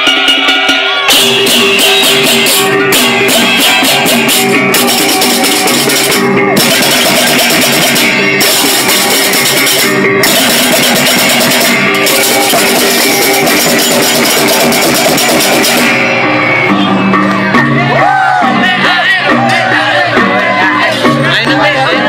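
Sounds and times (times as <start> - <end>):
clashing hand cymbals: 0.1 - 16.4
ringing bronze gongs: 0.1 - 16.4.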